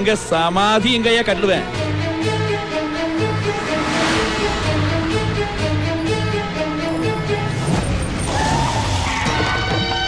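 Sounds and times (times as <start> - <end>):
film score music: 0.0 - 10.0
car engine and tyres: 1.3 - 9.7
rising whine: 2.8 - 7.6.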